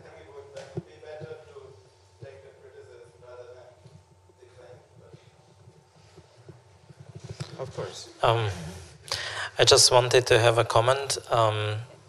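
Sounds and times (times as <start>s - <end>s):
microphone handling noise: 3.8s - 9.1s.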